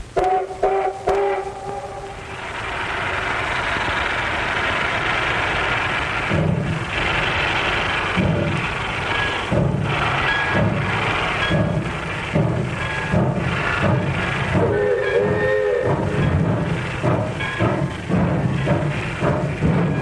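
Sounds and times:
steam locomotive whistle tooting: 0.0 - 2.9, 9.1 - 20.0
hiss of venting steam: 0.0 - 20.0
low exhaust chuffs: 0.0 - 20.0.

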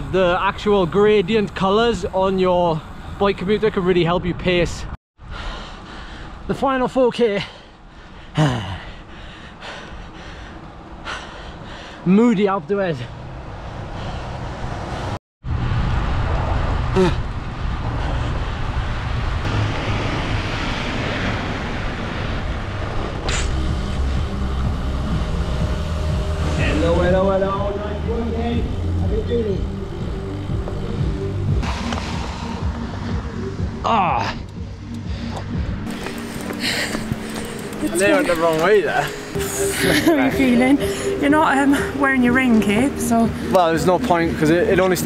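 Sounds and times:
bicycle tyres on wet road: 14.0 - 24.2, 35.9 - 39.3
music: 23.2 - 45.0.

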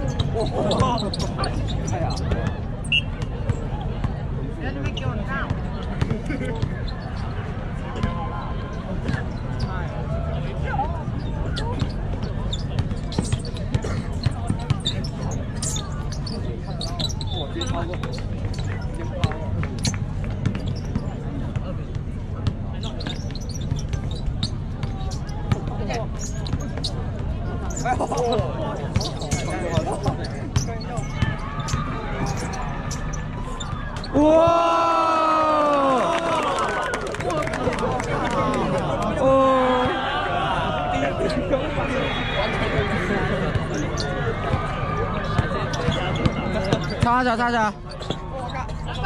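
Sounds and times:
spectators chatting: 0.0 - 49.0.

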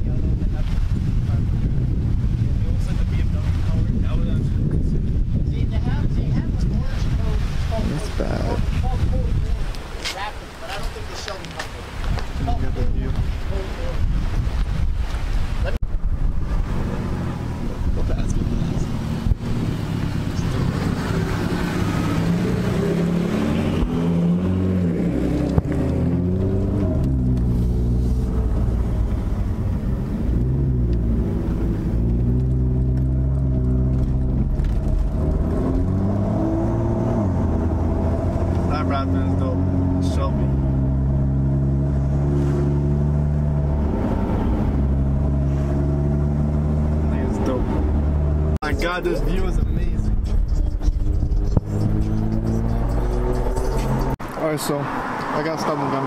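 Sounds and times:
road noise inside car: 16.0 - 56.0
car engine revving: 16.3 - 56.0.

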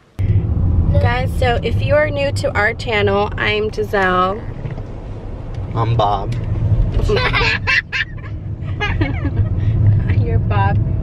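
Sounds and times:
car cabin rumble: 0.1 - 11.0.

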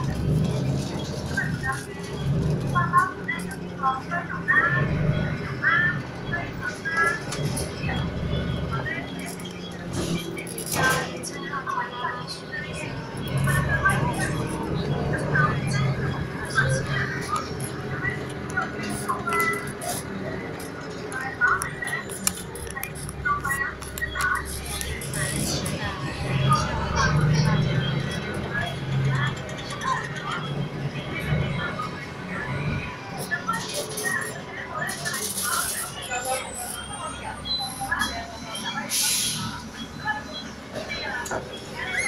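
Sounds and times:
bus engine humming: 0.0 - 42.0
indistinct voices talking: 0.0 - 42.0.

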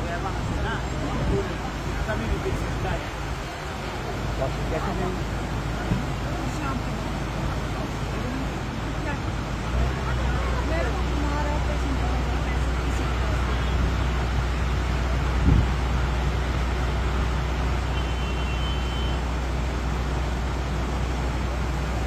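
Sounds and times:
continuous outdoor roar: 0.0 - 22.0.

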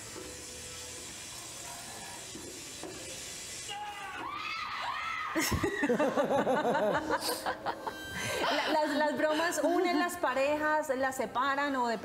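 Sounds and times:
tap water running into sink: 0.0 - 3.7.

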